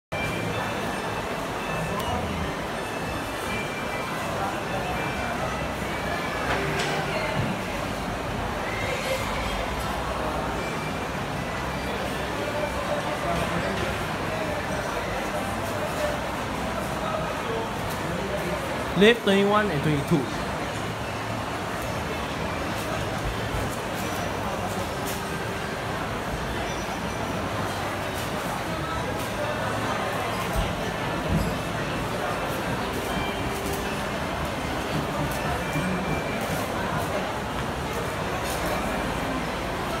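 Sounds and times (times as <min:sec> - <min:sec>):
indistinct voices of shoppers: 0:00.1 - 0:40.0.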